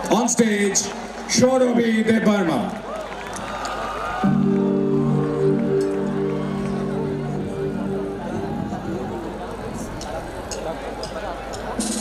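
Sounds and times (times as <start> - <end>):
electronic keyboard sustained chord: 4.2 - 10.5
live band playing: 4.2 - 10.5, 11.1 - 12.0.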